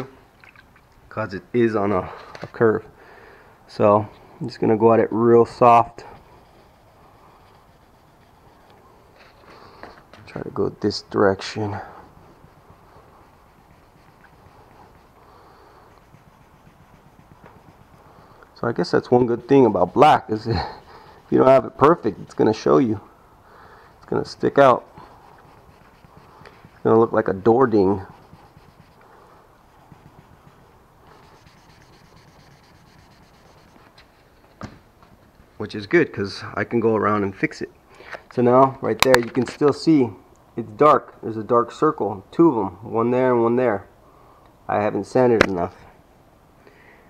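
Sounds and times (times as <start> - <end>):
sandpaper rubbing: 5.2 - 23.0, 23.6 - 34.5.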